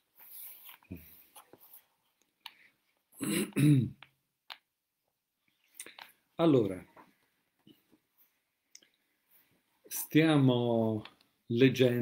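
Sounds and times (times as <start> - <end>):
man clearing his throat: 3.2 - 4.0.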